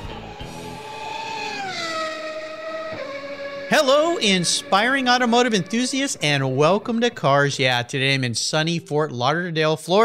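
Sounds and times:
held note sliding down: 0:00.0 - 0:07.4
guitar strumming: 0:01.7 - 0:08.7.

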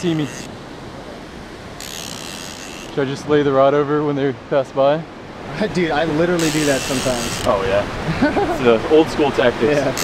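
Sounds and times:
surf washing on a beach: 0:02.6 - 0:10.0.

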